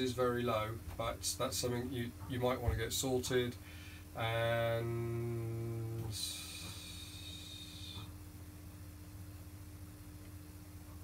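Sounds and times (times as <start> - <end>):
steady low hum: 0.0 - 11.0
synthesizer hiss: 4.4 - 8.2.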